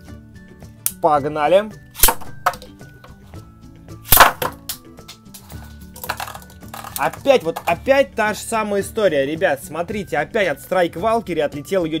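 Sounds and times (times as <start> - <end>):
spinning tops clashing: 2.0 - 2.7, 4.1 - 4.7.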